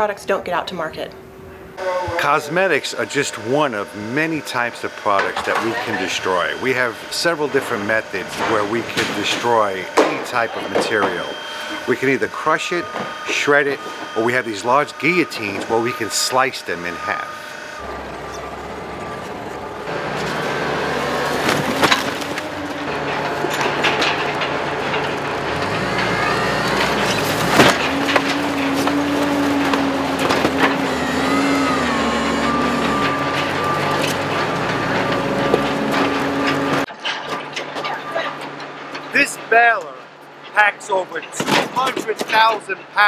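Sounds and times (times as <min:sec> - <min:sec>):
machinery hum wavering: 0:01.2 - 0:36.9
forklift running: 0:01.5 - 0:43.0.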